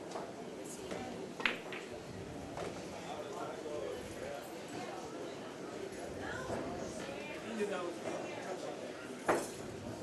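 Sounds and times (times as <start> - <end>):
murmur of voices: 0.0 - 10.0.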